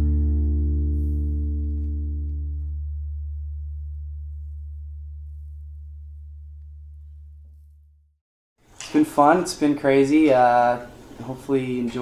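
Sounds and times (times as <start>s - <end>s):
acoustic guitar chord ringing: 0.0s - 3.9s
low bass guitar note: 0.0s - 7.8s.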